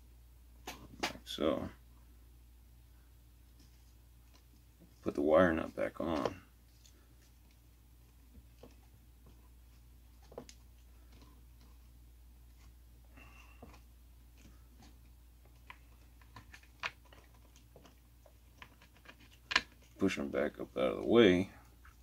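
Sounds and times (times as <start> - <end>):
low steady hum: 0.0 - 22.0.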